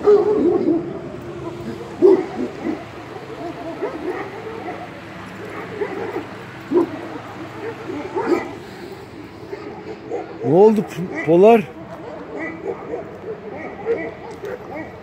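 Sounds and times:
dogs whining and yipping: 0:00.0 - 0:15.0.

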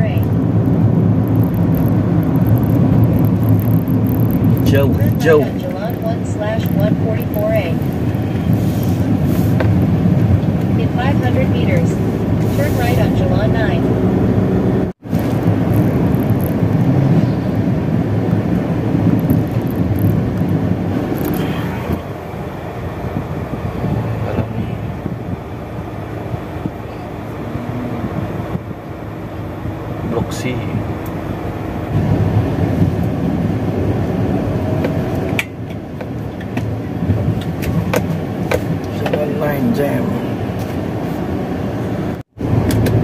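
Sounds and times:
car road and engine rumble: 0:00.0 - 0:43.0.

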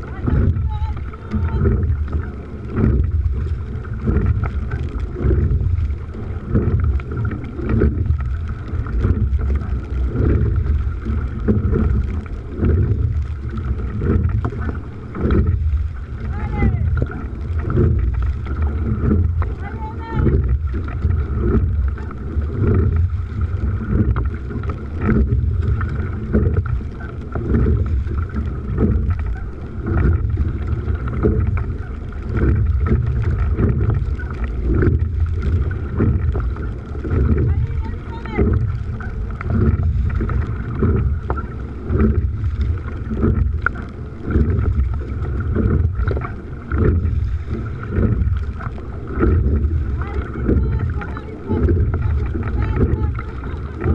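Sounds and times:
oars pulling through water: 0:00.0 - 0:53.9
water splashing along hull: 0:00.0 - 0:53.9
wind buffeting microphone: 0:00.0 - 0:53.9.

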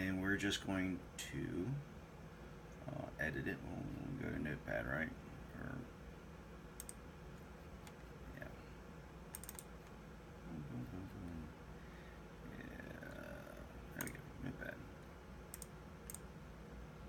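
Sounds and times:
computer mouse clicking: 0:06.8 - 0:07.0, 0:09.3 - 0:10.0, 0:14.0 - 0:14.2, 0:15.5 - 0:16.3
faint mumbling voice: 0:10.4 - 0:11.5, 0:12.4 - 0:14.8.

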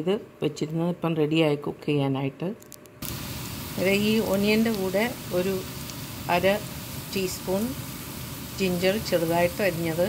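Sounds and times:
onions sizzling in hot oil: 0:03.0 - 0:10.0.

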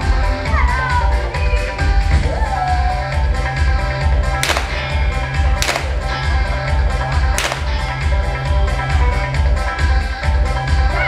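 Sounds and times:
background music with steady beat: 0:00.0 - 0:11.0
revolver shots: 0:04.4 - 0:06.4, 0:07.4 - 0:08.0.

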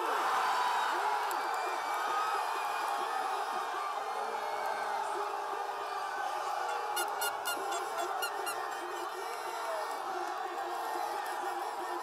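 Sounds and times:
crowd cheering and yelling: 0:00.0 - 0:12.0.

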